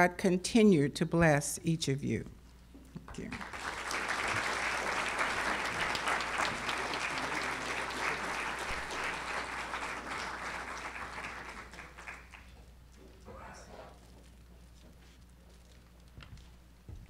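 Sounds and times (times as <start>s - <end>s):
audience applauding: 3.3s - 12.6s.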